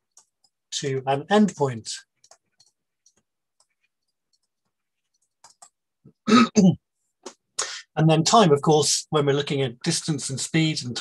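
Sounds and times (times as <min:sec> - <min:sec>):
man clearing his throat: 0:06.2 - 0:06.8.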